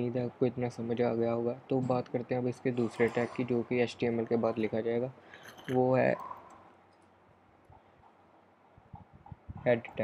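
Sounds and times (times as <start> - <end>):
man speaking: 0.0 - 6.3, 9.6 - 10.0.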